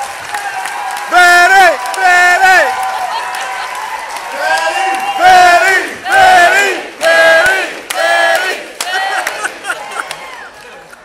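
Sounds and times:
audience chanting in unison: 5.1s - 9.7s.

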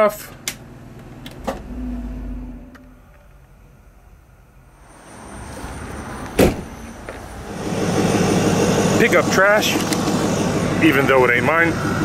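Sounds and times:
road traffic rushing: 0.6s - 12.0s
low hum: 0.7s - 5.0s
sharp thump: 6.4s - 6.8s.

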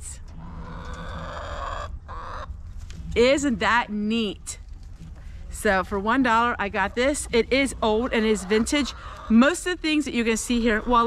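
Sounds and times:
steady low rumble: 0.0s - 11.0s
hens calling: 0.4s - 2.6s, 5.6s - 11.0s.

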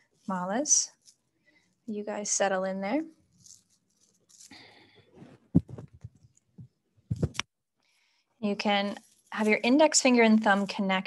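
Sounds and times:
bead necklace rattling: 3.1s - 7.4s.

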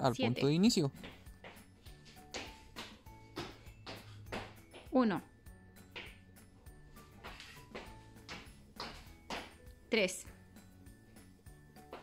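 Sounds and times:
quiet background music: 0.0s - 12.0s
sneakers landing on tiled floor: 1.0s - 4.9s.

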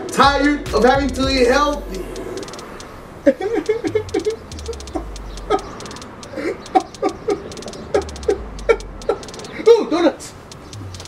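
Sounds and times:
music with ticking beat and bass: 0.0s - 11.0s.

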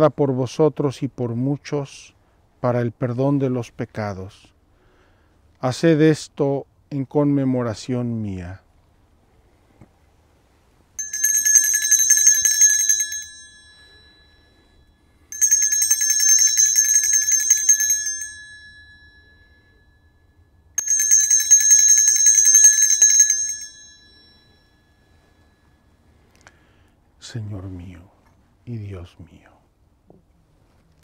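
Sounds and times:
altar bell ringing: 11.0s - 26.1s.

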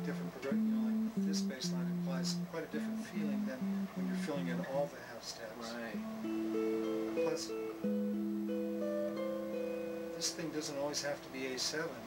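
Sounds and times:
electric guitar baroque passage: 0.0s - 4.8s, 5.9s - 11.6s.

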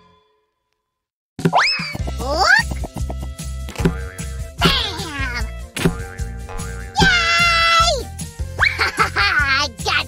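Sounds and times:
upbeat background music: 1.8s - 10.0s.

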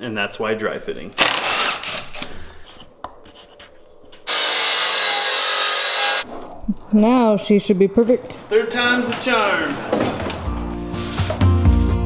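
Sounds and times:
power tool working wood: 4.3s - 6.2s.

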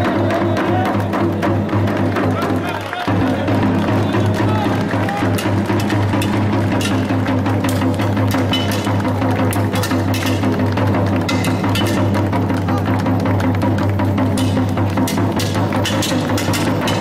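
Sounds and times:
large bass drum beaten: 3.1s - 17.0s.

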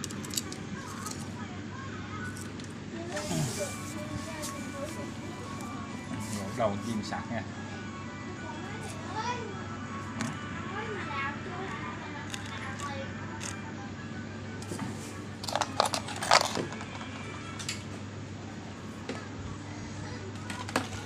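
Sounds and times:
faint background voices: 0.0s - 21.0s.

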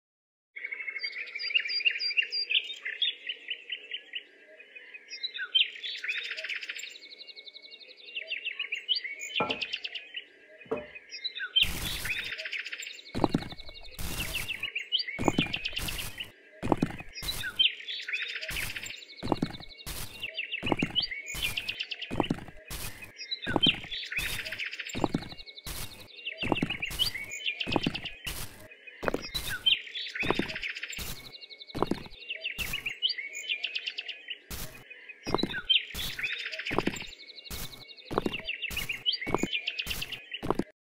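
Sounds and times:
birds chirping: 0.6s - 40.7s.

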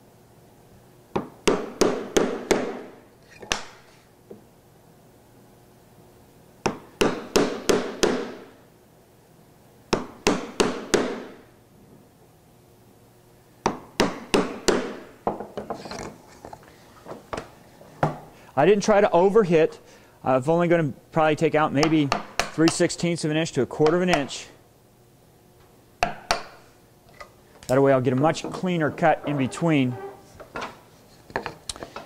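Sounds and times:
mallet striking a chisel: 26.0s - 26.6s.

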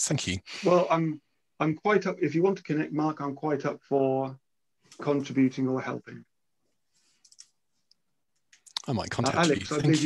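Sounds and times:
man talking: 0.0s - 4.4s, 5.0s - 6.3s, 8.7s - 10.0s.

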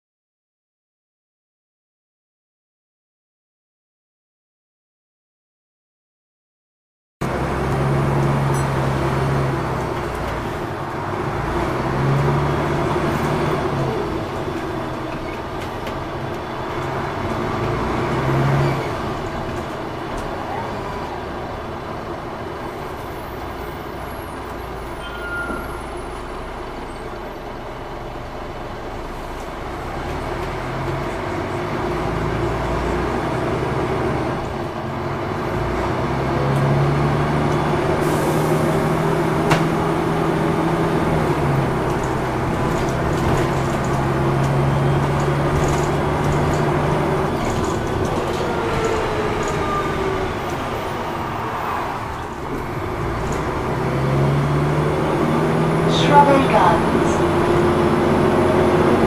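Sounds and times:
bus diesel engine running: 7.2s - 59.0s.

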